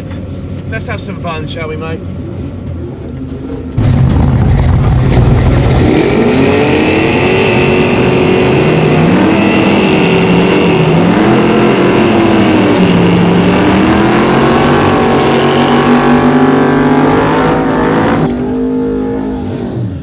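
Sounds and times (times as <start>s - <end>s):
drag car engines revving: 2.0s - 20.0s.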